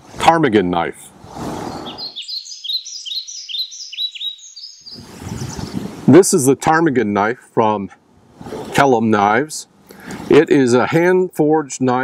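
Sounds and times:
faint steady background noise: 0.0 - 12.0
bird chirping rapidly: 1.6 - 5.9.

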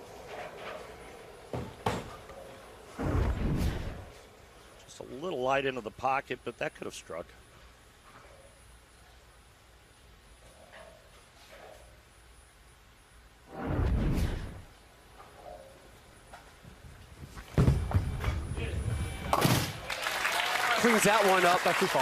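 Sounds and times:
quiet arena background: 0.0 - 22.0
bowling ball rolling: 16.7 - 19.8.

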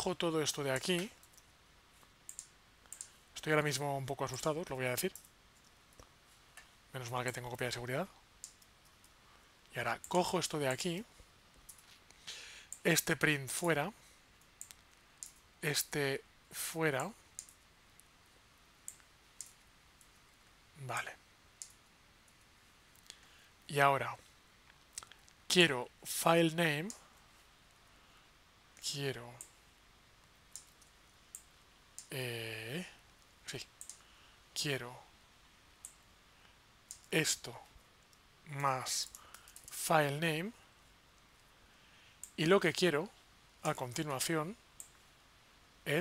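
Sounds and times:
keyboard and mouse clicks: 0.8 - 1.5, 2.3 - 3.2, 14.4 - 15.4, 17.0 - 18.1, 30.5 - 32.1, 33.8 - 34.0, 36.9 - 37.1, 39.0 - 39.8
faint computer clicks: 0.8 - 3.2, 4.3 - 7.5, 8.4 - 9.2, 10.0 - 12.9, 14.4 - 15.5, 17.0 - 18.2, 21.6 - 23.3, 30.2 - 32.1, 33.1 - 34.2, 35.7 - 37.2, 39.0 - 39.8, 42.2 - 42.5.

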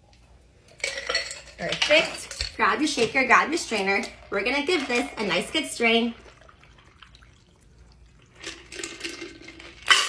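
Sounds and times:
liquid pouring over ice: 6.1 - 10.0.

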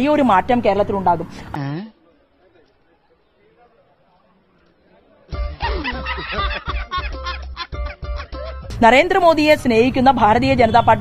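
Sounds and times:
music with steady low beat: 5.3 - 9.0
men laughing heartily: 5.4 - 8.7.

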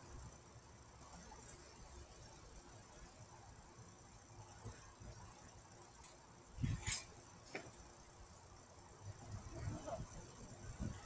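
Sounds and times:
person landing on trampoline: 6.6 - 7.8.

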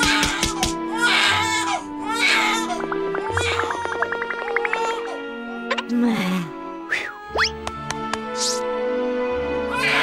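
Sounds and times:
background music: 0.0 - 10.0
plucked notes: 2.6 - 6.0.

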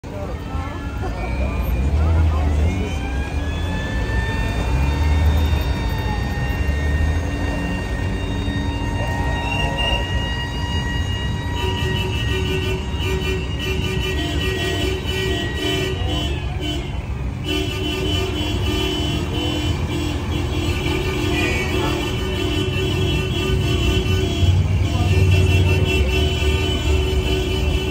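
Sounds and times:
car engines rumbling past: 0.0 - 27.9
crowd voices: 0.0 - 27.9
car horn blasts: 10.7 - 27.9.

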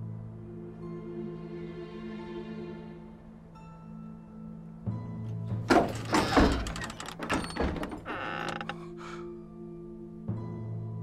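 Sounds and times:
orchestral background music: 0.0 - 11.0
creaking scraping and knocking: 5.5 - 9.0.

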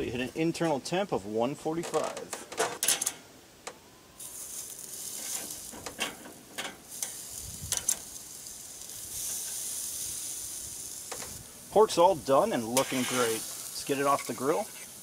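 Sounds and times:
meat sizzling on grill: 4.1 - 15.0
metal tongs clicking on grate: 5.8 - 8.0.

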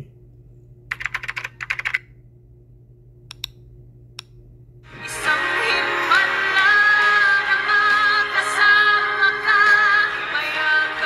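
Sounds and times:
faint steady hum: 0.0 - 11.0
keyboard typing: 0.9 - 2.1.

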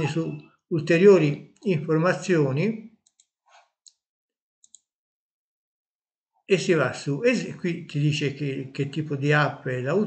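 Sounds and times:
computer mouse click: 4.6 - 4.9.

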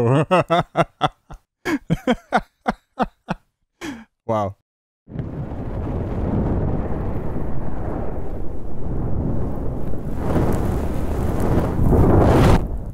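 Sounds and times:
thunder rumbling: 5.1 - 12.9.

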